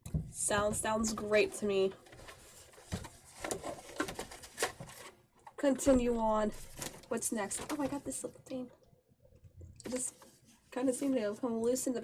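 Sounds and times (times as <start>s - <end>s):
packaging rustling: 1.7s - 5.3s, 6.3s - 8.3s.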